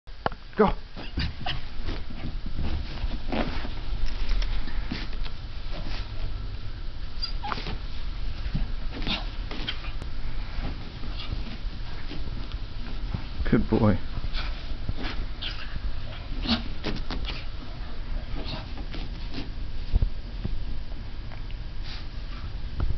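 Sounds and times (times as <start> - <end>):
towel rustling and scuffing: 0.8 - 6.4, 7.4 - 20.8
dog rustling on towel: 0.9 - 6.3, 21.8 - 22.5
dog vocal sound: 14.3 - 18.8.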